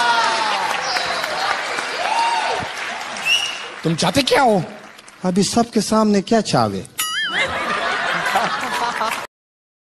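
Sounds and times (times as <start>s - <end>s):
audience applause and cheering: 0.0s - 5.3s.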